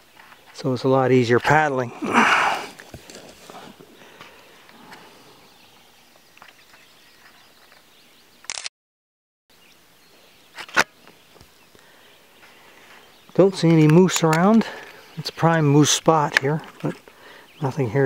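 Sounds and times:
paddling on calm water: 1.9s - 8.0s.

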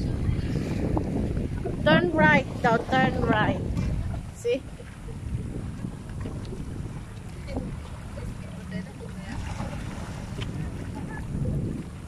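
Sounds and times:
wind buffeting microphone: 0.0s - 12.0s
small waves washing among rocks: 0.6s - 12.0s.

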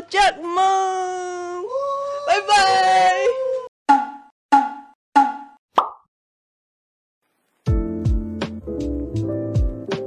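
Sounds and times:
cartoon pop sound effects: 3.9s - 6.1s.

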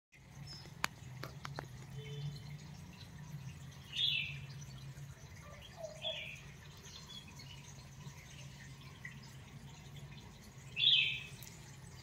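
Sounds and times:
low steady hum: 0.2s - 12.0s.

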